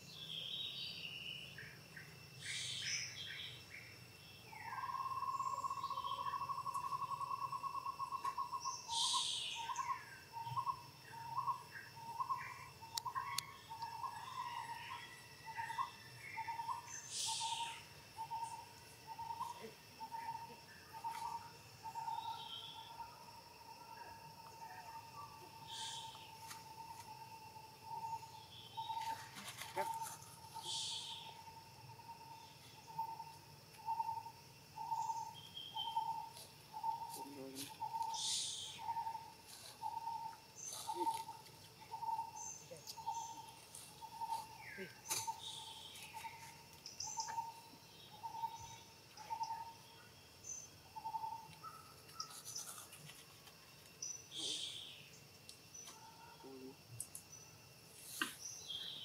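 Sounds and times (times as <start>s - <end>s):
birds chirping: 0.0s - 23.2s, 27.8s - 52.9s
high-pitched insect drone: 0.0s - 53.4s.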